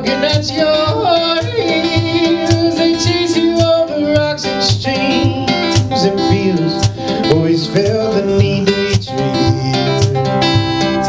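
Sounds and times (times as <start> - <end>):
fingerpicked acoustic guitar: 0.0 - 11.0.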